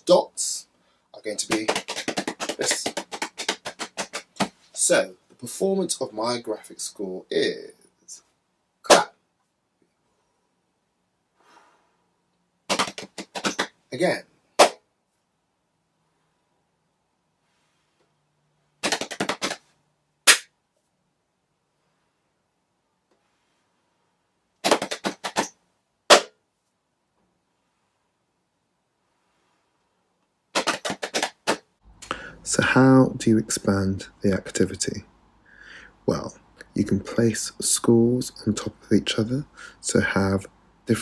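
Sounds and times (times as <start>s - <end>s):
hand clap: 1.4s - 4.5s, 12.7s - 13.7s, 18.8s - 19.6s, 20.3s - 20.5s, 24.6s - 25.5s, 30.6s - 31.6s
quick sharp clicks: 1.5s - 4.5s, 12.7s - 13.7s, 18.8s - 19.6s, 24.6s - 26.3s, 30.6s - 31.6s
faint breath: 11.4s - 12.2s, 32.0s - 32.5s, 35.4s - 36.0s, 39.5s - 39.8s.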